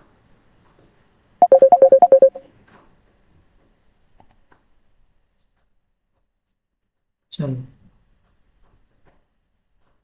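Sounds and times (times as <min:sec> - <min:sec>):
short alternating electronic beeps: 0:01.4 - 0:02.4.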